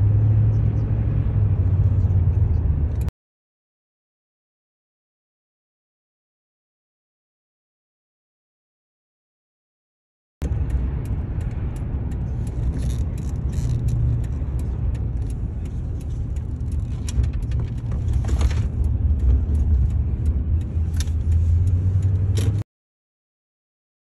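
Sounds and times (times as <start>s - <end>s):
car engine rumble: 0.0s - 3.1s, 10.4s - 22.6s
sharp clicks: 10.4s - 22.6s.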